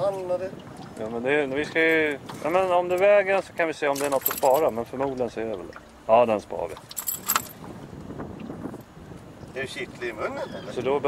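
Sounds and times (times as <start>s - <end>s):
handling and rustling: 3.9s - 4.8s, 6.8s - 7.6s.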